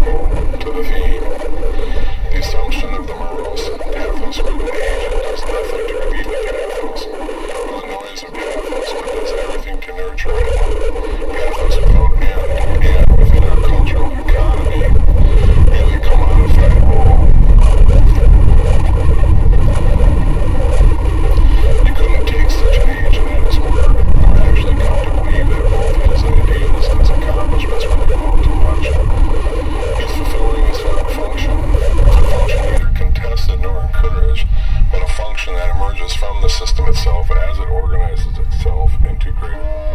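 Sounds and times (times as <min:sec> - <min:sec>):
unintelligible voice: 0:00.0 - 0:18.8, 0:21.4 - 0:39.9
heavy low rumble: 0:00.0 - 0:39.9
mid-range drone: 0:00.0 - 0:39.9.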